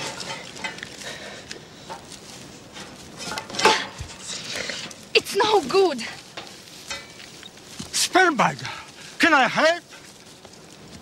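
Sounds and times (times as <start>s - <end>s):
rustling: 0.0s - 11.0s.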